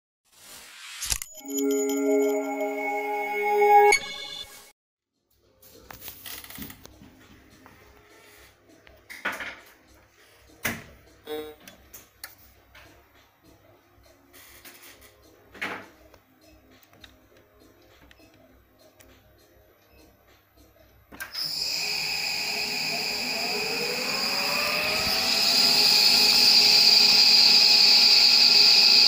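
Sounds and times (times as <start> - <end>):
musical logo jingle: 1.4 - 4.7.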